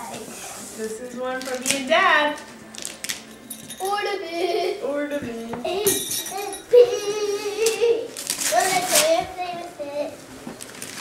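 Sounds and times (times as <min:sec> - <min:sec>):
wrapping paper crackling and tearing: 0:02.7 - 0:03.2, 0:07.6 - 0:09.4, 0:10.6 - 0:11.0.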